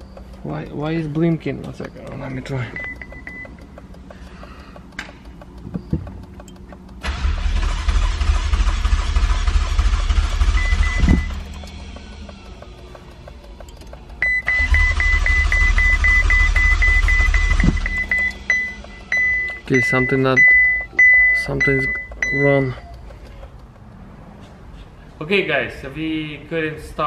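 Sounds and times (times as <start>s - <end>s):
high warning chime beeping: 0.0s - 4.0s, 10.3s - 23.1s
car starter cranking: 0.0s - 24.3s.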